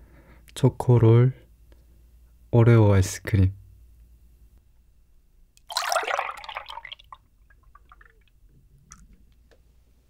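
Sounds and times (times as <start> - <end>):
milk splashing into a mug: 5.6 - 8.3
trickling and drips: 5.6 - 9.1.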